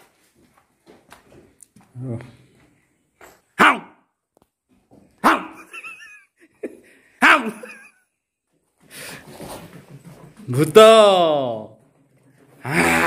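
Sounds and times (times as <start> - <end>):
dog barking: 3.6 - 4.0, 5.2 - 5.7.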